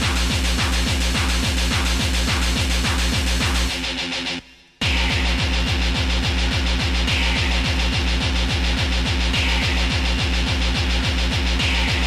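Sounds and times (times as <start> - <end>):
fast kick drum: 0.0 - 3.9, 4.8 - 12.0.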